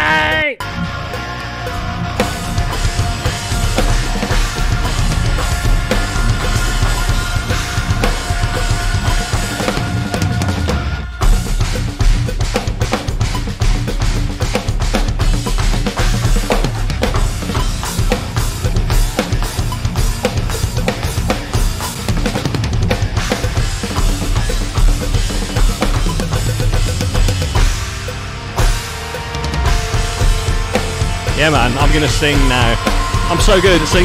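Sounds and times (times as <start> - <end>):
band backing track: 0.0 - 34.0
electronic drum kit played fast: 1.6 - 34.0.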